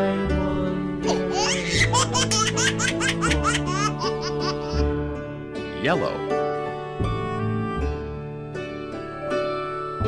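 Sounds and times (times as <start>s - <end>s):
light background music: 0.0s - 10.0s
baby giggling: 1.1s - 4.9s.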